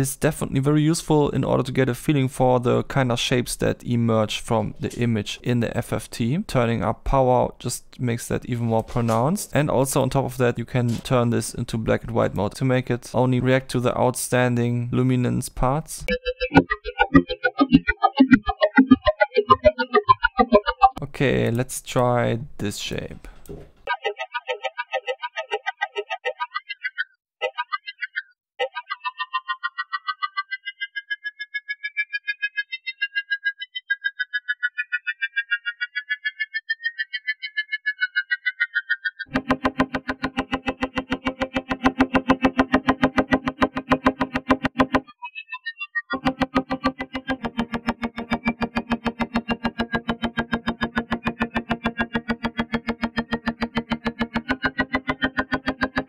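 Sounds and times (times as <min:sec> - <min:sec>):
low note with overtones: 0:39.3 - 0:45.1
gliding pulsing high tones: 0:39.3 - 0:56.0.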